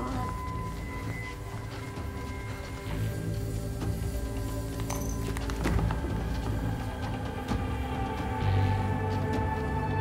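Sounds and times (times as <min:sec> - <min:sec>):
low film score drone: 0:00.0 - 0:10.0.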